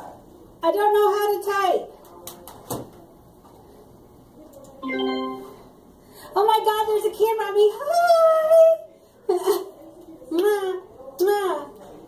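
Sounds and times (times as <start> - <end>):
short steady pitched tone: 4.8 - 5.7.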